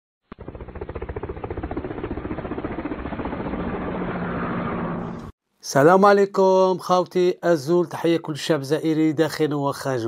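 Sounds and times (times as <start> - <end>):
engine pulsing rapidly: 0.3 - 5.3.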